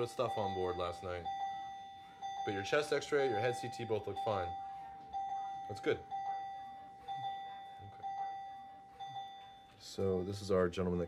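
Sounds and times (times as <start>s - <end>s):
patient monitor alarm pinging: 0.0s - 11.0s.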